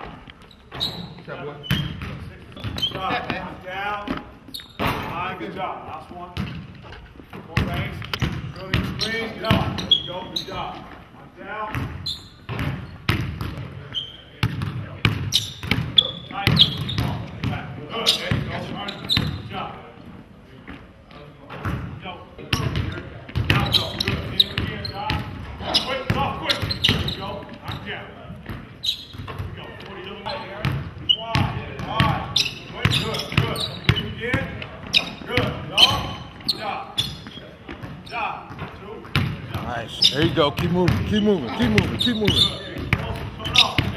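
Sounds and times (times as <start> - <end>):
basketball bouncing on hardwood: 14.4 - 15.9, 37.7 - 39.6.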